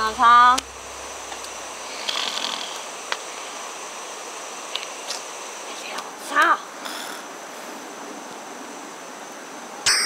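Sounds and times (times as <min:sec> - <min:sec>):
outdoor night background hiss: 0:00.0 - 0:10.0.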